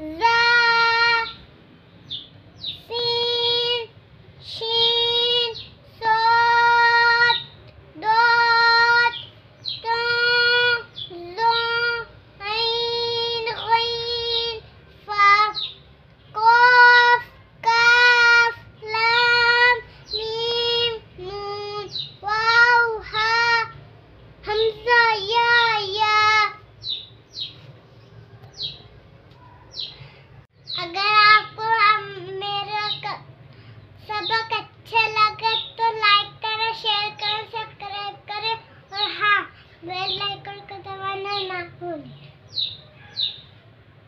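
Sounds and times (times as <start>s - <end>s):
girl reciting in sing-song chant: 0.0s - 27.5s, 28.3s - 44.0s.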